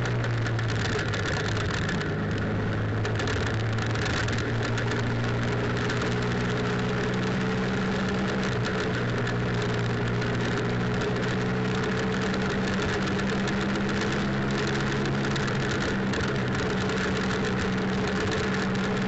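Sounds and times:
motorcycle engine cruising: 0.0s - 19.0s
wind and road noise: 0.0s - 19.0s.

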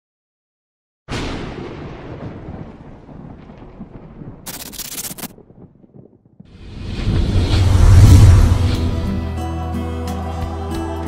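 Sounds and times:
cinematic boom rumbling: 6.5s - 9.3s.

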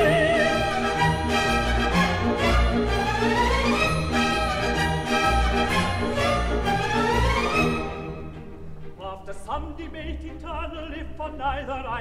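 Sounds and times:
theatre orchestra playing: 0.0s - 12.0s
violins: 0.0s - 12.0s.

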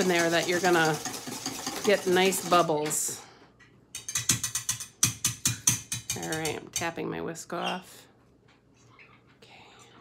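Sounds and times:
whisk clicking against metal bowl: 0.0s - 3.0s, 3.9s - 6.9s.

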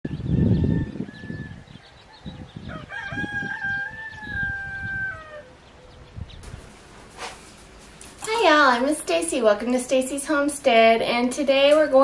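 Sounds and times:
rooster crowing: 0.2s - 6.0s.

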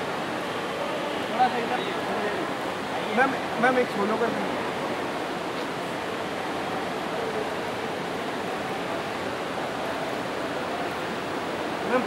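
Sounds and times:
faint far-off voices: 0.0s - 12.0s
hiss-like concourse ambience: 0.0s - 12.0s.

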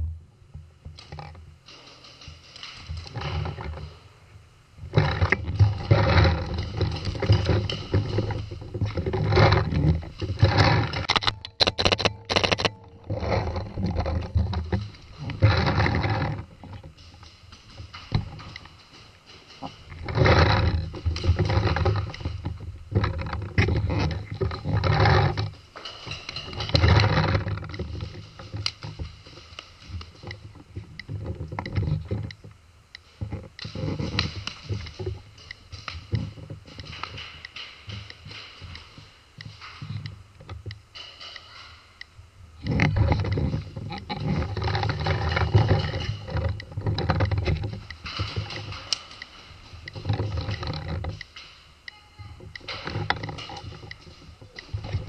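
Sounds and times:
rattling handling noise: 0.0s - 55.0s.

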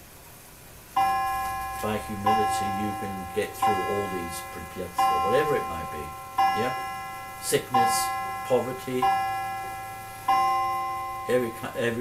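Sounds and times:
clock chime striking: 1.0s - 12.0s.

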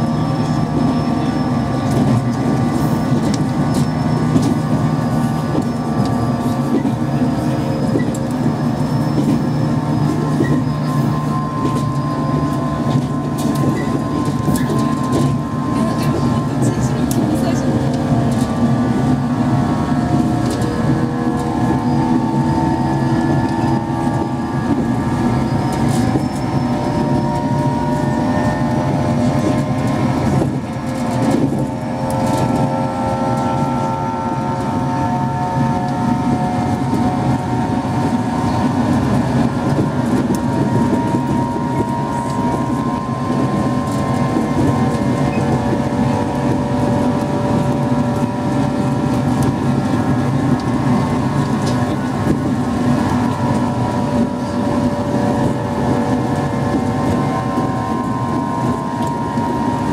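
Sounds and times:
electric train motors whining: 0.0s - 59.9s
wheels clicking on rails: 0.0s - 59.9s
low running rumble: 10.4s - 59.9s.

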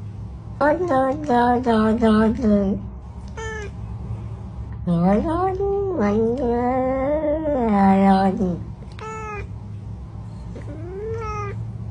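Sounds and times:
low steady hum: 0.0s - 11.9s
cat meowing: 3.4s - 3.8s, 9.0s - 9.5s, 10.7s - 11.6s.

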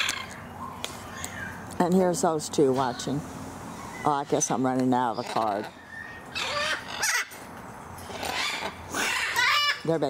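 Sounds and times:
macaw squawking: 3.8s - 7.4s, 8.1s - 10.0s.

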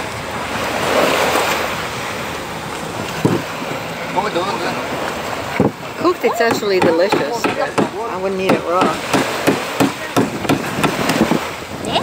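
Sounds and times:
surf rushing: 0.0s - 12.0s
wind: 0.0s - 12.0s.

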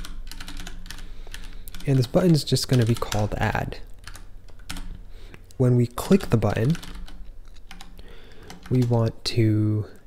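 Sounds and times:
keyboard typing clicks: 0.0s - 2.1s.

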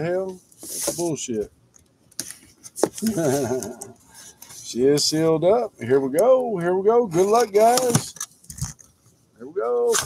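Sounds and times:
man laughing: 3.0s - 4.0s.

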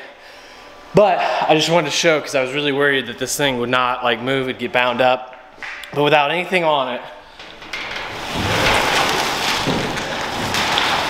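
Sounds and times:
metal door rumbling and scraping: 0.7s - 11.0s.

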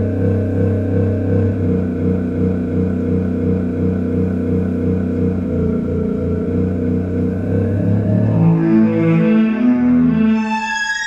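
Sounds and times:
synthesizer music: 0.0s - 11.0s.

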